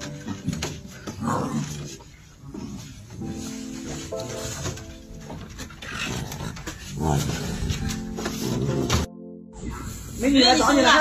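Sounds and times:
tiger cubs growling and snarling: 0.0 - 3.6, 5.5 - 10.2.

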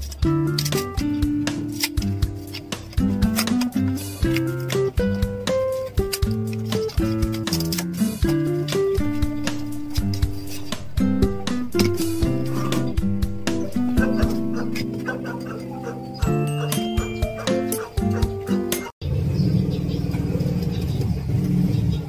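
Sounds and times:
plucked guitar melody: 0.2 - 18.9.

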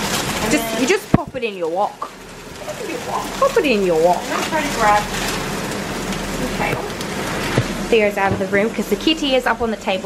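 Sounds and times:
vegetables sizzling in a wok: 0.0 - 10.0.

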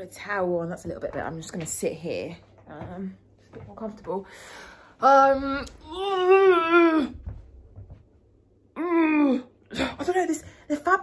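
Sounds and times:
woman's wavering vocal noise: 8.8 - 9.9.

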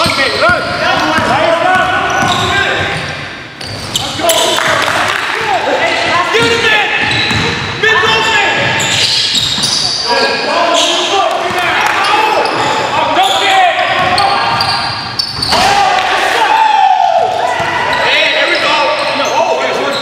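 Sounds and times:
basketball bouncing: 0.0 - 1.4, 6.0 - 7.7, 13.9 - 15.6
sneakers squeaking on hardwood: 0.0 - 4.5, 6.0 - 15.8.

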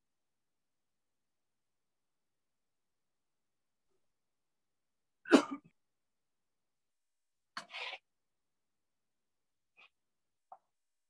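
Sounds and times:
person coughing: 5.3 - 5.7.

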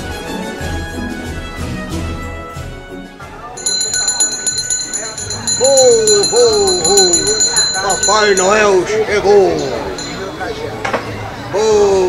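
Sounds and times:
handbell ringing: 3.6 - 10.5.

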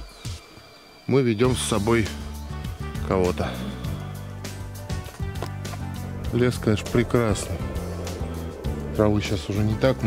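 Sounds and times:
background music sustained tones: 0.0 - 10.0.

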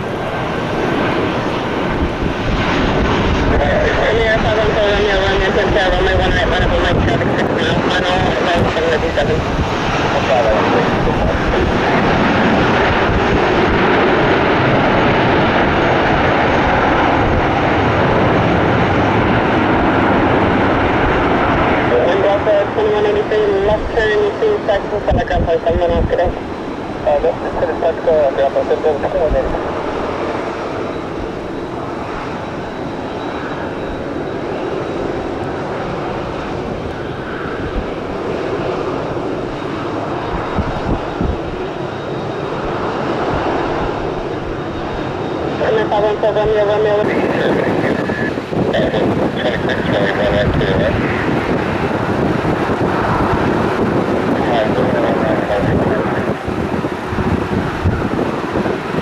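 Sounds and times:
jet engines roaring: 0.0 - 59.0.

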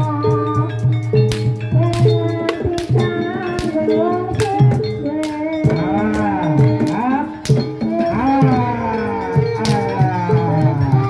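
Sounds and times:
gamelan melody bending in pitch: 0.0 - 11.0
sharp percussion strikes: 0.0 - 11.0.

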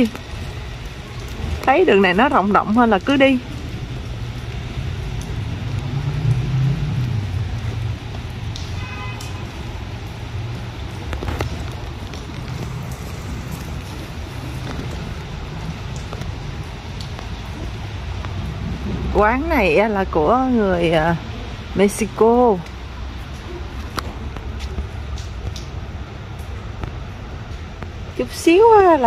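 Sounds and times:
low street rumble: 0.0 - 29.0.

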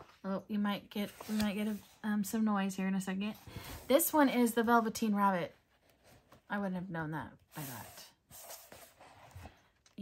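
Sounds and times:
paper pages turning: 1.0 - 2.0.

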